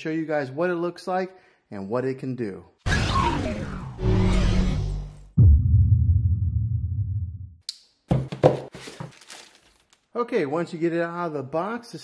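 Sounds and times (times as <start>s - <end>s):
musical hit: 2.9s - 6.3s.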